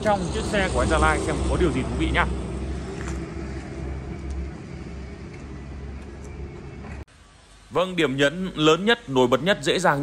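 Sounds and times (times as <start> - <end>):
vehicle engine rumbling: 0.0 - 9.8.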